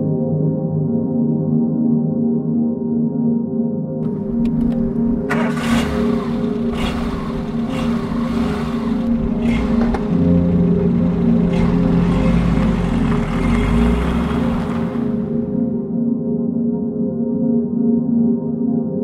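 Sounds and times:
ambient music: 0.0s - 19.0s
car engine accelerating: 4.0s - 15.8s.

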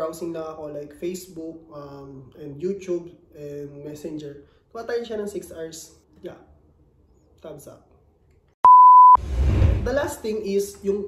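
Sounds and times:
electronic bleep: 8.6s - 9.2s
low rumbling noise: 9.2s - 10.0s.

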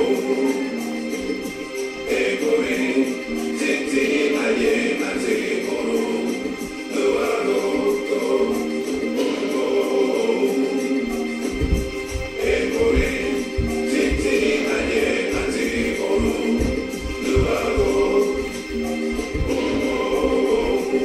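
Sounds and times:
gospel choir singing: 0.0s - 1.0s, 1.9s - 21.0s
low thuds: 11.5s - 21.0s.

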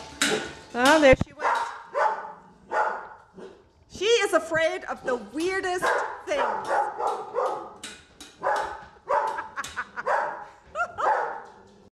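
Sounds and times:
small dog barking: 1.4s - 3.6s, 5.8s - 7.8s, 8.4s - 11.6s.

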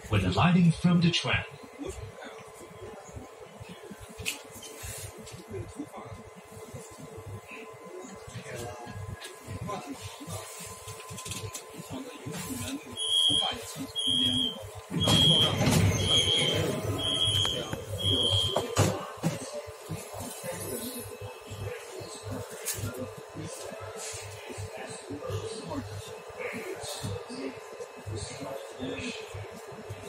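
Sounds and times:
passenger bustle: 0.0s - 30.0s
train door warning beeps: 12.9s - 19.0s.

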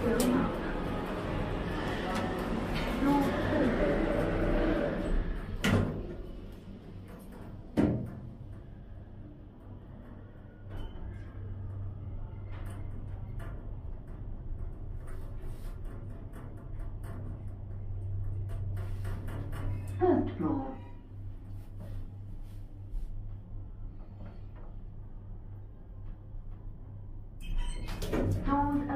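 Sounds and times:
lift doors sliding shut: 0.0s - 8.2s
lift travelling hum: 0.0s - 28.9s.

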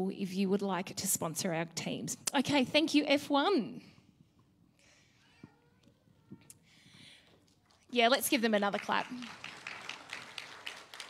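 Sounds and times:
audience applauding: 8.7s - 11.0s.

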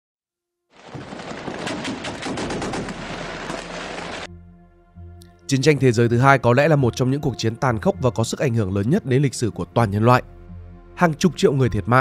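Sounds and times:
rapid gunfire: 0.8s - 4.3s.

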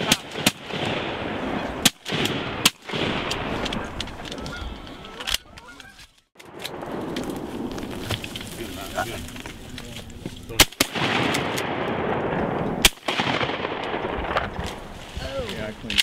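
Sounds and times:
shotgun shots: 0.0s - 4.0s, 10.6s - 14.8s
voices: 0.0s - 6.3s, 8.4s - 11.5s, 15.1s - 16.0s
geese honking: 3.3s - 6.3s.

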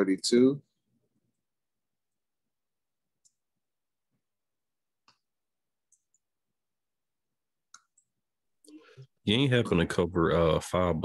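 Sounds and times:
faint mouse and keyboard clicks: 7.7s - 8.1s.

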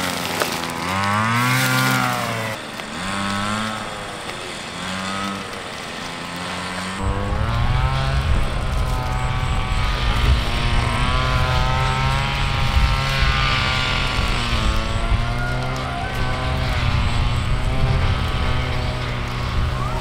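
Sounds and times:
engine running steadily: 0.0s - 20.0s.

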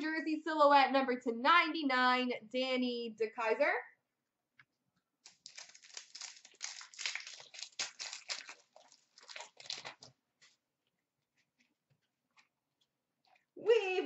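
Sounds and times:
foil wrapper crinkling: 5.2s - 10.6s.

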